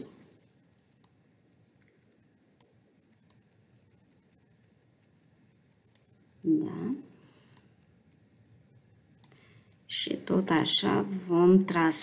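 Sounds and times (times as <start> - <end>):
faint room hiss: 0.0 - 12.0
computer mouse click: 0.7 - 3.5, 5.7 - 6.2, 7.5 - 7.9, 9.2 - 9.4.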